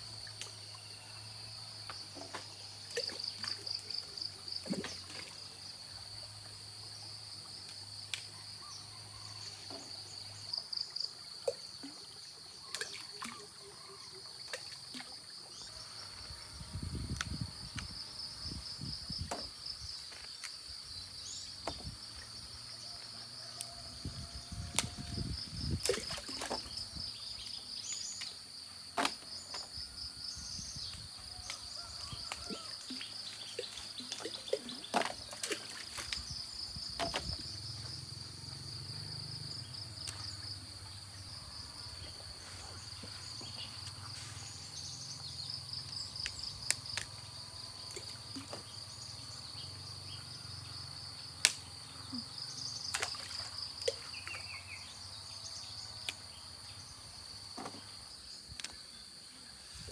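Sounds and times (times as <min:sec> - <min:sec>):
insect chorus chirring: 0:00.0 - 0:59.9.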